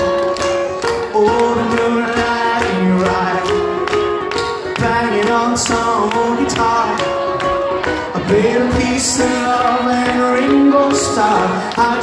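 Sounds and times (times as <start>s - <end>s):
harmonica melody: 0.0s - 12.0s
strummed acoustic strings: 0.0s - 12.0s.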